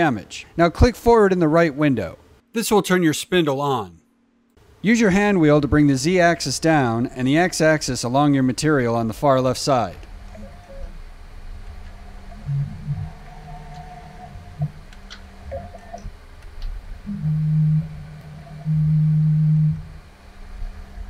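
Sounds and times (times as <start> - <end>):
mill spindle humming: 4.6 - 21.0
axis motors whining: 10.1 - 16.1, 17.1 - 20.1.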